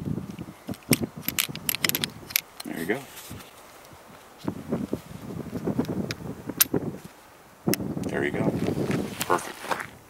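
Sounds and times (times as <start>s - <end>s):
revolver handling noise: 0.3s - 3.5s.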